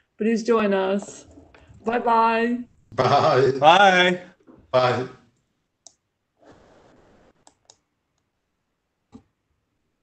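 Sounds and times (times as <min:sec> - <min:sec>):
computer mouse clicks: 0:07.4 - 0:08.3.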